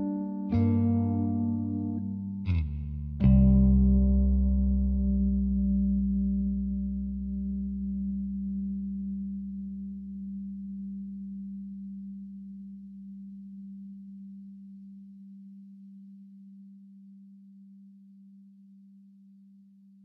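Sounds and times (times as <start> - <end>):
sustained low tone: 0.0 - 17.4
deep rumble: 1.4 - 11.3.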